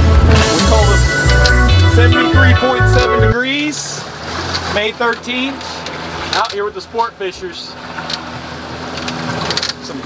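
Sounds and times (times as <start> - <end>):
boat engine humming: 0.0 - 10.0
water rushing: 0.0 - 10.0.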